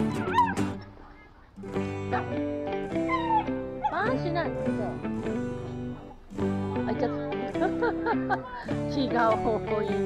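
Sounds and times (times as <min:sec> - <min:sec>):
background guitar music: 0:00.0 - 0:01.0, 0:01.6 - 0:10.0
dog's high sliding cries: 0:03.0 - 0:04.0.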